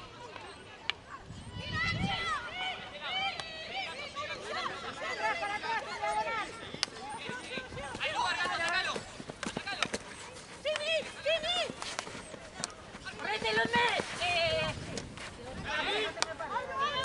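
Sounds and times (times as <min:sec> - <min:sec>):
hockey sticks clacking ball: 0:06.7 - 0:15.3.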